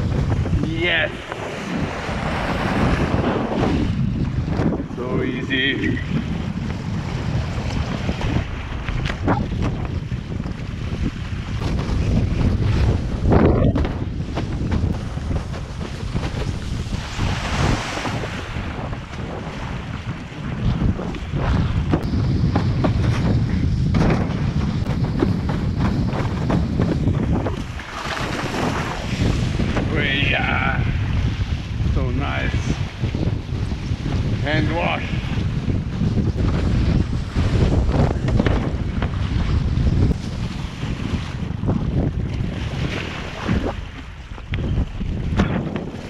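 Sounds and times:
water splashing along a board: 0:00.0 - 0:31.8, 0:32.6 - 0:46.0
wind buffeting microphone: 0:00.0 - 0:46.0.

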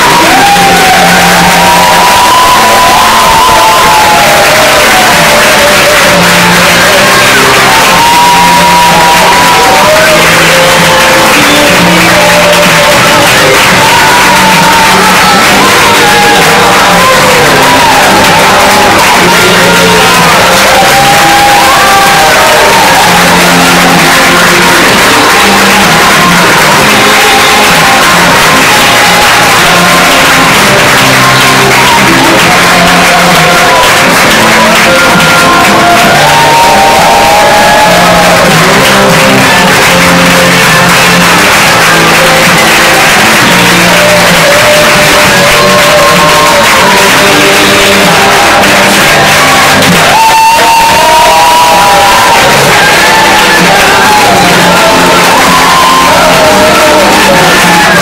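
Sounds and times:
crowd clapping: 0:00.0 - 0:58.0
crowd shouting: 0:00.0 - 0:58.0
loud music: 0:00.0 - 0:58.0.

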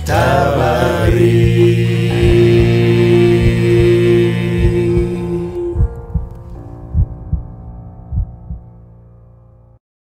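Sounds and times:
held low music chord: 0:00.0 - 0:09.8
heartbeat thumps: 0:01.1 - 0:08.7.

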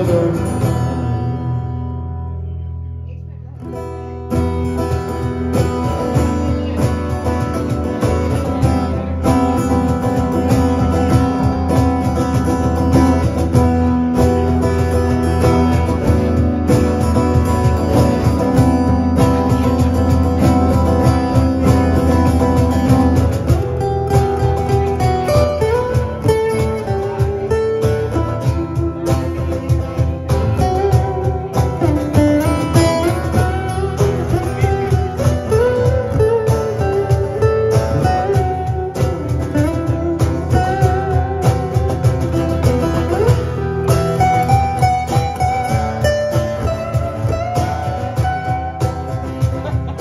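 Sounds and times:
steady cajon beat: 0:00.0 - 0:02.6, 0:03.6 - 0:50.0
acoustic guitars strumming and picking: 0:00.0 - 0:50.0.

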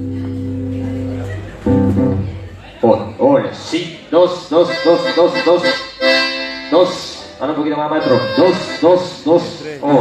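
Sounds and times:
guitar: 0:00.0 - 0:02.6, 0:04.4 - 0:10.0
accordion chord: 0:04.5 - 0:10.0.

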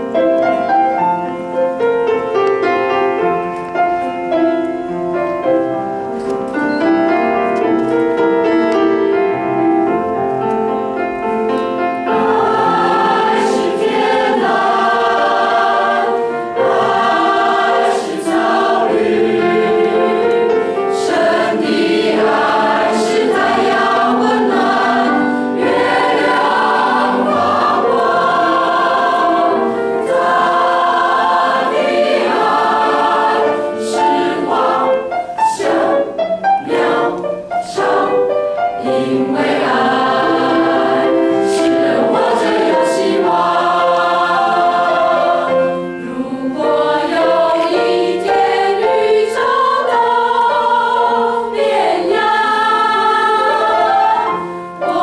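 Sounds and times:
mixed choir singing a hymn: 0:11.2 - 0:55.0.

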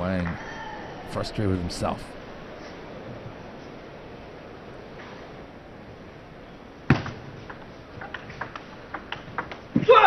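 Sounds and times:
arena crowd noise: 0:00.0 - 0:08.4.

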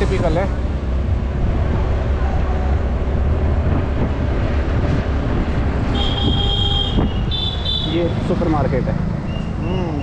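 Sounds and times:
wind buffeting microphone: 0:01.0 - 0:07.4.

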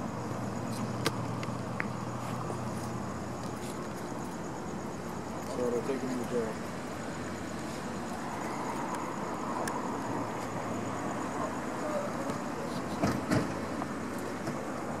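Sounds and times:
vehicle and traffic noise: 0:00.0 - 0:15.0.

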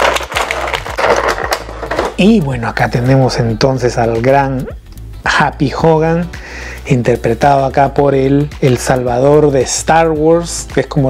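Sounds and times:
plastic packaging crinkling: 0:00.0 - 0:02.3.

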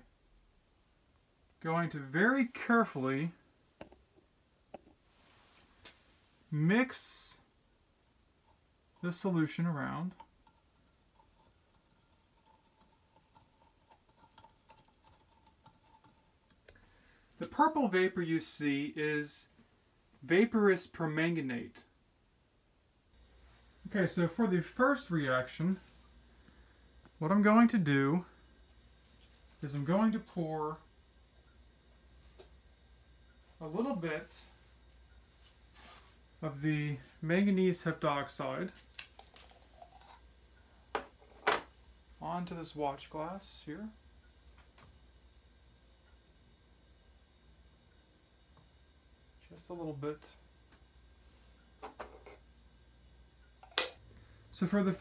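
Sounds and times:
glass beaker handling: 0:39.2 - 0:40.2, 0:53.6 - 0:54.0.

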